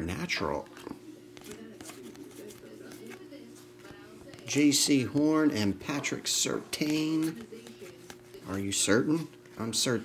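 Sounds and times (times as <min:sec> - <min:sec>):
electrical hum: 0:00.0 - 0:10.0
trading cards flipped by hand: 0:00.6 - 0:05.0.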